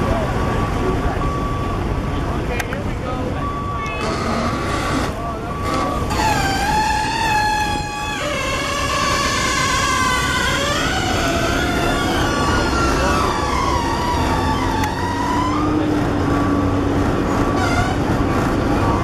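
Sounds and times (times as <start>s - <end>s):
street traffic noise: 0.0s - 19.0s
emergency vehicle siren wailing: 3.2s - 19.0s.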